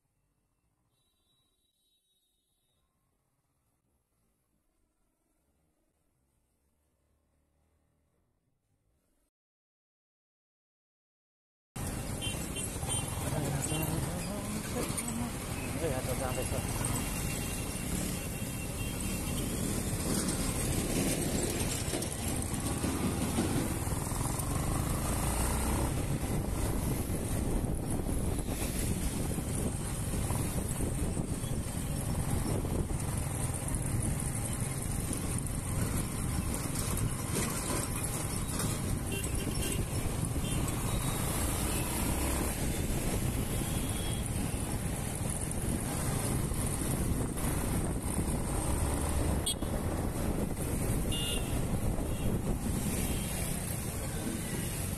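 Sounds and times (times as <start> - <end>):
road and wind noise: 11.8 - 54.9.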